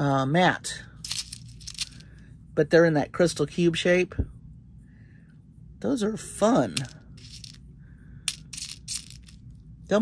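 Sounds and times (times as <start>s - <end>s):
beads clicking together: 1.0s - 2.0s, 8.3s - 9.4s
faint rustle of beads: 1.0s - 2.2s, 6.8s - 7.6s, 8.2s - 9.4s.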